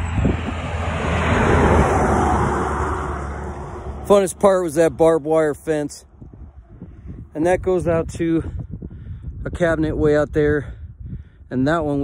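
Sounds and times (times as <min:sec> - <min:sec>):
truck passing on road: 0:00.0 - 0:06.9.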